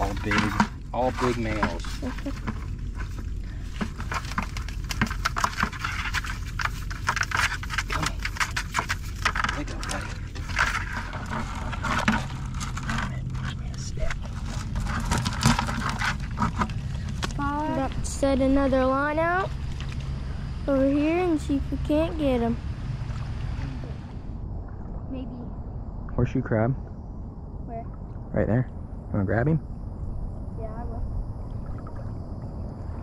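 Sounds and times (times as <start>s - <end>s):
net and shell clicking on bucket: 0.0s - 17.4s
steady low rumble: 0.0s - 33.0s.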